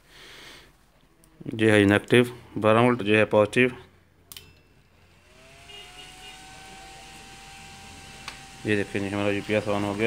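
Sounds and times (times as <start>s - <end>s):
fan whir spinning up: 4.9s - 10.0s.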